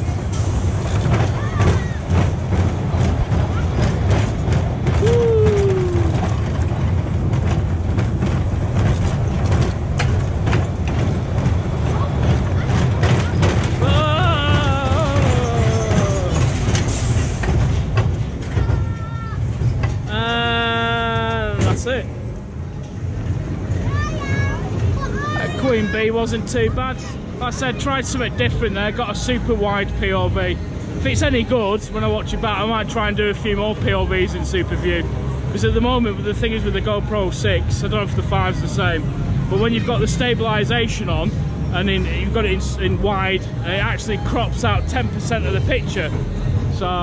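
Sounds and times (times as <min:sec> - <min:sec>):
rattles and clicks: 0:00.0 - 0:20.4
roller coaster rumbling on track: 0:00.0 - 0:47.0
riders calling out: 0:11.8 - 0:16.7.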